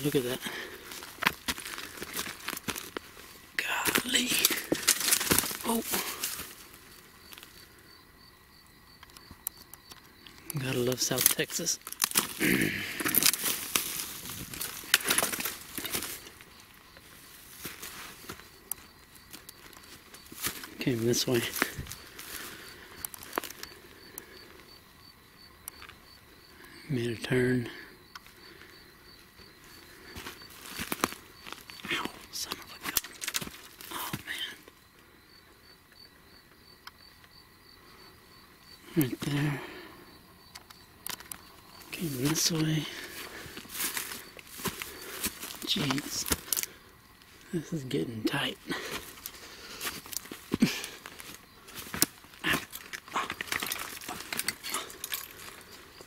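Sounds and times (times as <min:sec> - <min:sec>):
footsteps crunching through brush: 0:00.0 - 0:07.7, 0:11.1 - 0:24.7, 0:28.2 - 0:34.4, 0:41.1 - 0:56.0
twigs crackling: 0:00.0 - 0:07.9, 0:08.6 - 0:35.2, 0:38.6 - 0:56.0
insect chirping: 0:00.0 - 0:56.0.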